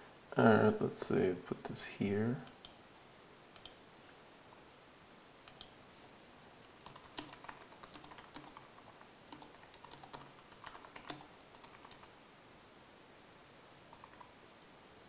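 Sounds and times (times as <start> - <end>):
computer keyboard typing: 5.5 - 5.7, 6.8 - 12.1, 13.9 - 14.3.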